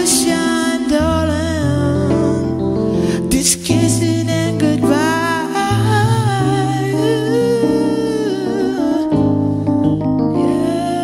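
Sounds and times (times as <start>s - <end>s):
electric piano chords: 0.0s - 11.0s
person humming a melody: 0.0s - 11.0s.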